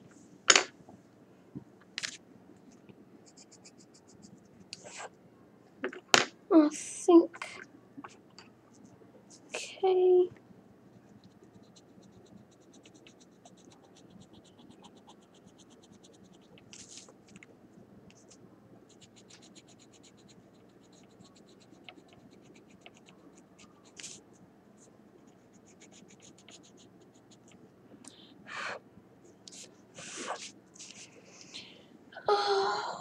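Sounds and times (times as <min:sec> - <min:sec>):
pencil scratching on paper: 0:10.9 - 0:17.4, 0:18.1 - 0:24.2, 0:24.8 - 0:27.6.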